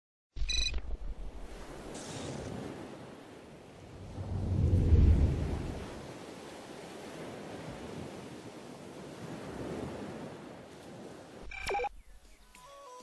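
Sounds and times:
wind: 0.4s - 13.0s
waves rushing: 1.1s - 11.5s.

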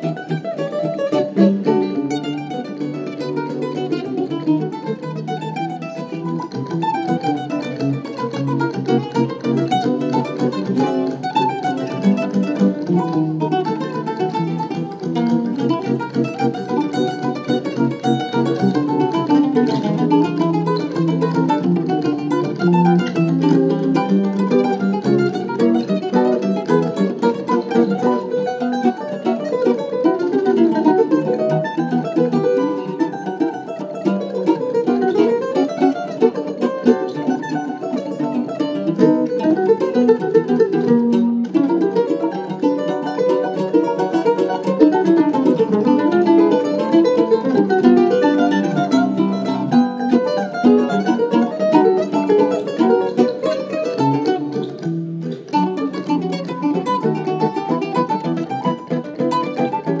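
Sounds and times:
plucked string duet: 0.0s - 60.0s.

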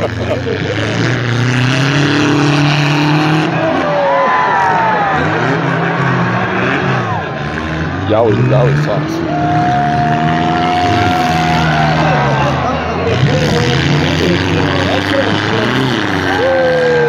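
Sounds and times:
car engines revving: 0.0s - 17.0s
crowd shouting: 1.4s - 17.0s.

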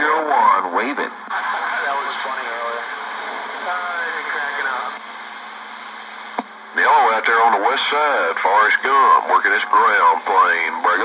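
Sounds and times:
voice over radio: 0.0s - 2.9s, 3.6s - 5.0s, 6.8s - 11.0s
radio hiss: 0.0s - 11.0s
radio click: 6.2s - 6.5s.

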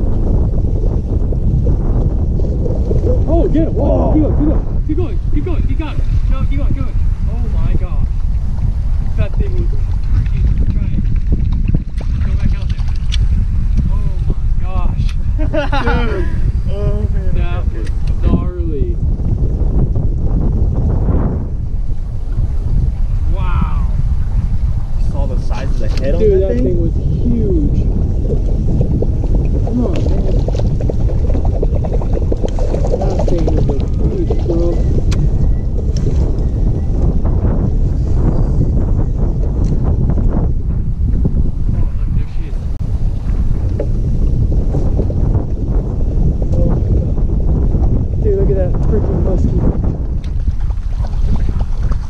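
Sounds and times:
choppy water: 0.0s - 52.0s
wind buffeting microphone: 0.0s - 52.0s
indistinct voices speaking: 3.0s - 8.1s, 13.8s - 19.1s, 25.0s - 36.4s
water lapping against boat hull: 8.1s - 13.9s, 27.2s - 37.0s, 50.0s - 52.0s.

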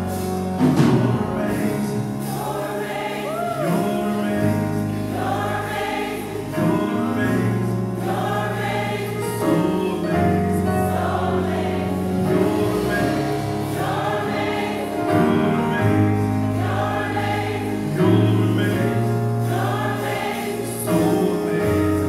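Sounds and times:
gospel choir singing: 0.0s - 22.0s.

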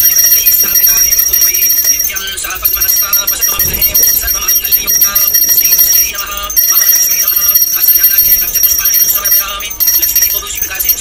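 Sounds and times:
hand bell ringing rapidly: 0.0s - 11.0s.

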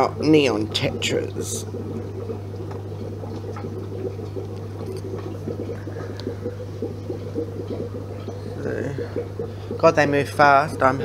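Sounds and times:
air bubbles in water: 0.0s - 11.0s
steady low hum: 0.0s - 11.0s.

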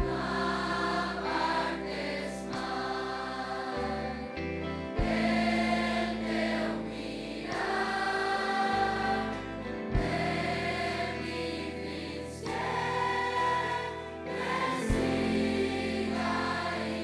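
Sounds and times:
instrumental accompaniment with bass: 0.0s - 17.0s
teenage choir singing: 0.0s - 17.0s.

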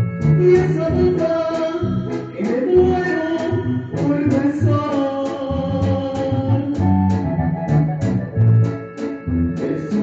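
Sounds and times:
bass guitar: 0.0s - 10.0s
organ chords: 0.0s - 10.0s.

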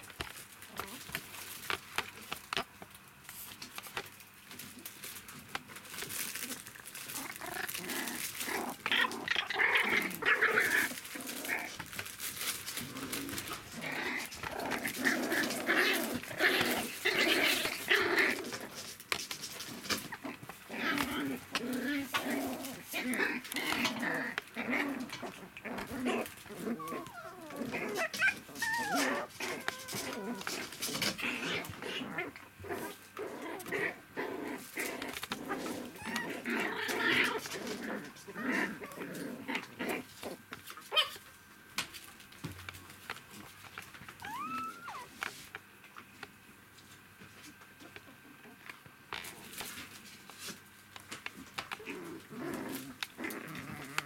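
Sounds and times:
puppies growling and whimpering: 0.6s - 2.6s, 4.0s - 41.2s, 43.9s - 45.3s, 51.3s - 54.0s.

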